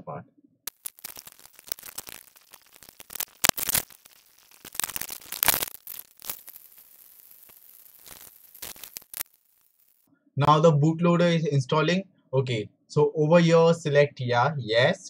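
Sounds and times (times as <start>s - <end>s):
dense irregular crackling: 0.7s - 10.1s
steady high hiss: 0.7s - 10.1s.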